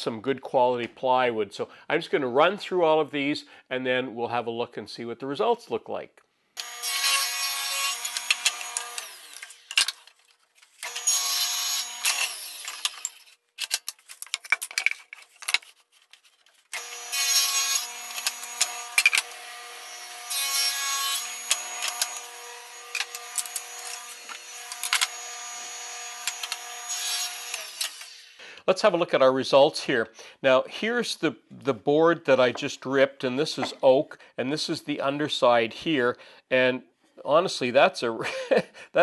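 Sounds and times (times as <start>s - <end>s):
table saw cutting wood: 6.6s - 9.9s, 10.8s - 13.3s, 16.8s - 28.4s.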